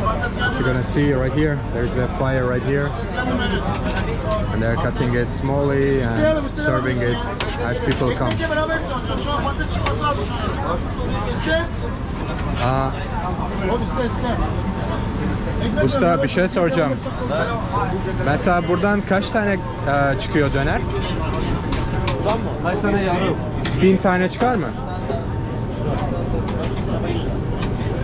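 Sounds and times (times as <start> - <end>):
low rumble of street noise: 0.0 - 28.0
people talking: 0.0 - 28.0.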